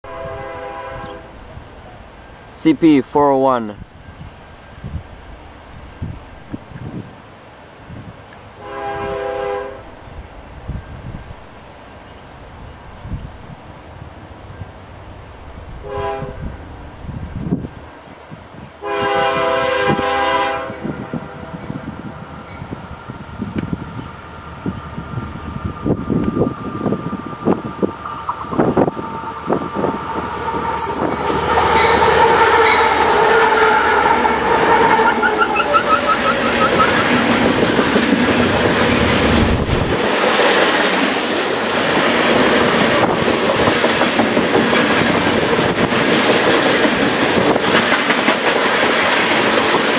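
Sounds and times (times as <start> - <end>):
locomotive air horn blast: 0.0 - 1.4, 8.6 - 10.0, 15.8 - 16.5, 18.8 - 21.7, 28.6 - 37.6
wind rumbling on microphone: 3.8 - 11.6, 12.3 - 49.9.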